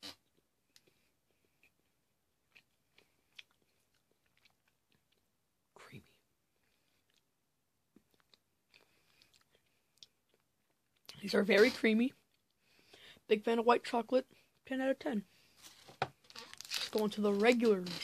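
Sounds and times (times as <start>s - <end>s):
chewing: 0.2s - 5.3s, 6.6s - 7.3s, 7.9s - 11.2s.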